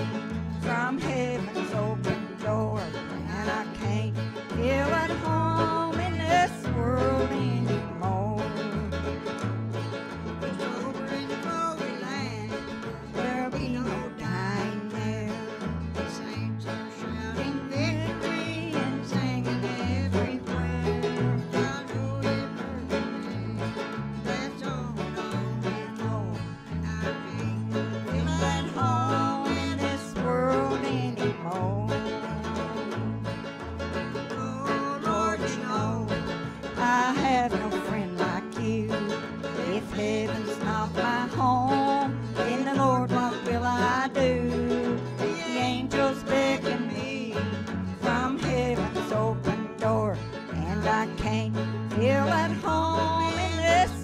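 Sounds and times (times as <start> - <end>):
steady bass-note rhythm: 0.0 - 16.8, 17.4 - 54.0
acoustic guitar: 0.0 - 54.0
banjo: 0.0 - 54.0.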